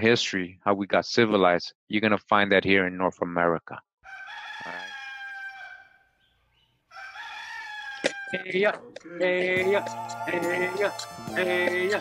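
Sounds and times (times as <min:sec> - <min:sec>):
rooster crowing: 0:04.0 - 0:06.2, 0:06.9 - 0:08.5.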